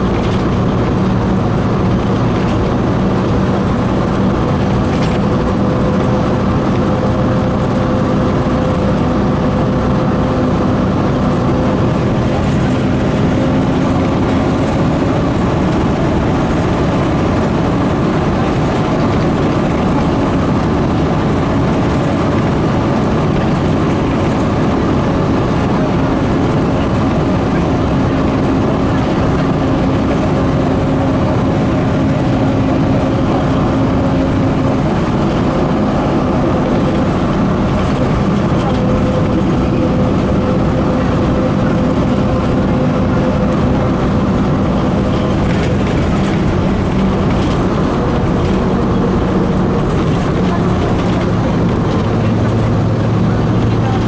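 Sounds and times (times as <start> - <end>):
bus engine drone: 0.0 - 54.0
road noise: 0.0 - 54.0.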